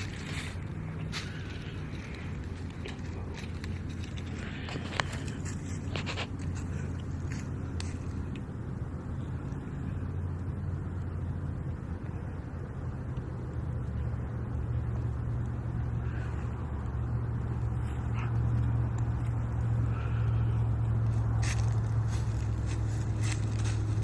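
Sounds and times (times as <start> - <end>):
faint rustles: 0.0 - 10.4, 15.5 - 24.0
low motor rumble: 0.0 - 24.0.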